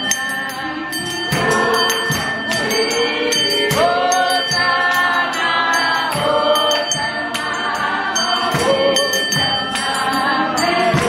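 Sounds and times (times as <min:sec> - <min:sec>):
choir singing a hymn: 0:00.0 - 0:11.0
steady beat: 0:00.0 - 0:11.0.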